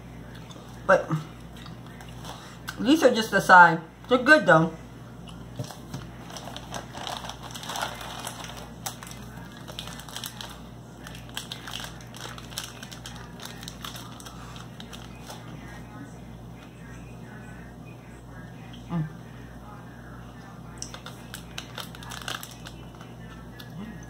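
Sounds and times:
candy wrapper crinkling: 0:05.6 - 0:15.5, 0:20.8 - 0:23.1.

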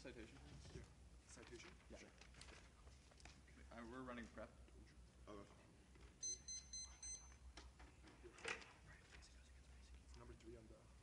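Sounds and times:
paper rustling: 0:00.3 - 0:03.6
electronic timer beeping: 0:06.2 - 0:07.4.

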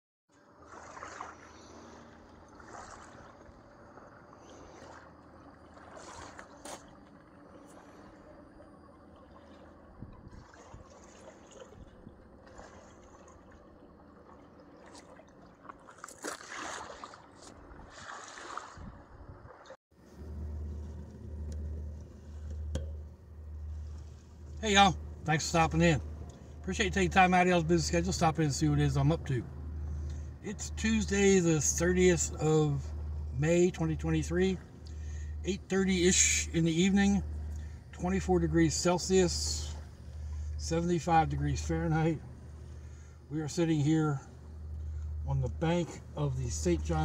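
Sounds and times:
waves lapping on gravel: 0:00.4 - 0:19.8
pulsing low hum: 0:20.0 - 0:47.0.

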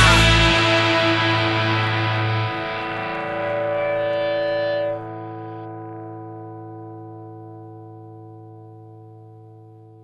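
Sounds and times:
distorted electric guitar chord: 0:00.0 - 0:10.0.

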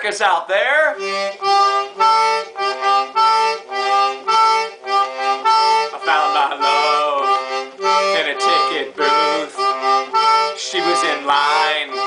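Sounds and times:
toy concertina chords: 0:01.0 - 0:12.0.

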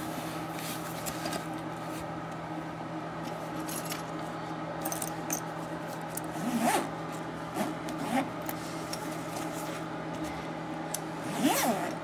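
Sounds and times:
bag zipper being pulled: 0:06.4 - 0:06.9, 0:11.2 - 0:12.0.

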